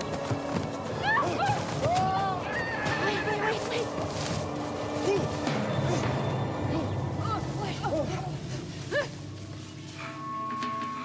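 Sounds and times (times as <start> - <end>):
film music score: 0.0 - 11.0.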